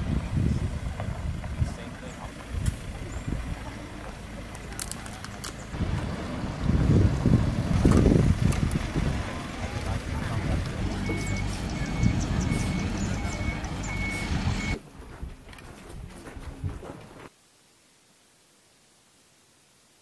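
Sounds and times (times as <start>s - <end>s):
truck engine running: 0.0s - 14.8s
reversing alarm beeping: 10.3s - 14.8s.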